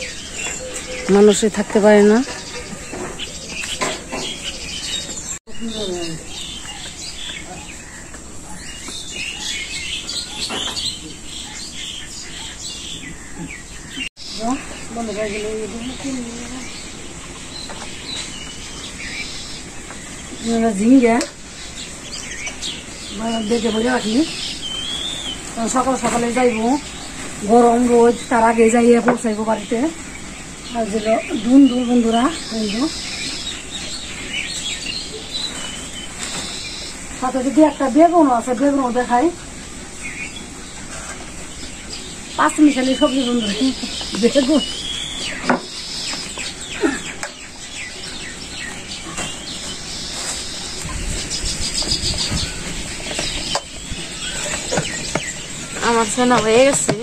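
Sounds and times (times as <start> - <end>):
birds chirping and twittering: 0.0 - 57.0.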